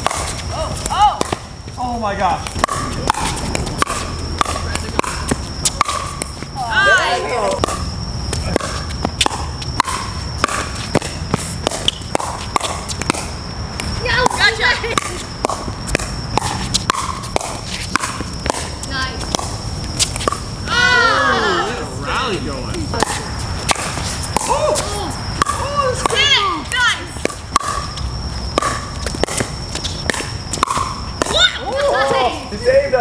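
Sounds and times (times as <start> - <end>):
faint high whine: 0.0 - 33.0
players shouting: 6.6 - 7.6, 20.6 - 22.6, 24.4 - 27.1.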